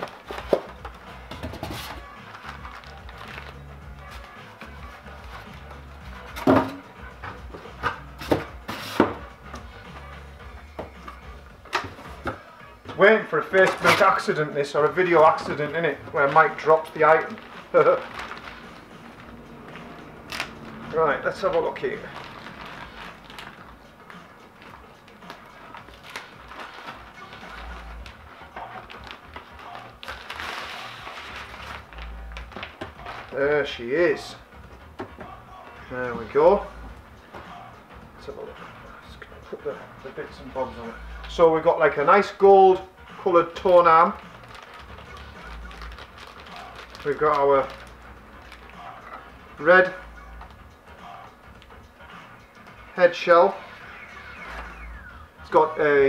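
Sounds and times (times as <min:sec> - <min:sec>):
plastic wrapping rustling: 0:00.0 - 0:06.7, 0:13.0 - 0:34.4, 0:43.5 - 0:51.9
music: 0:00.0 - 0:56.0.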